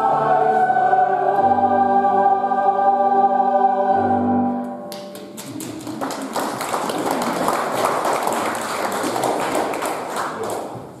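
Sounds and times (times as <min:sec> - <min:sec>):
choir and organ chord: 0:00.0 - 0:04.8
audience applause: 0:04.9 - 0:11.0.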